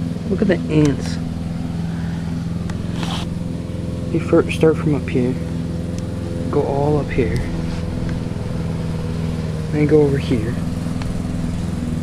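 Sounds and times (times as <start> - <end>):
engine running steadily: 0.0 - 12.0.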